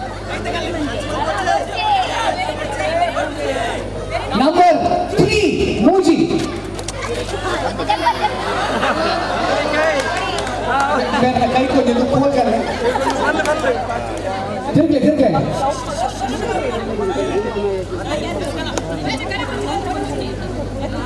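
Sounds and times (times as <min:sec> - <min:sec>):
spectators chattering and calling out: 0:00.0 - 0:21.0
steady low hum: 0:00.0 - 0:21.0.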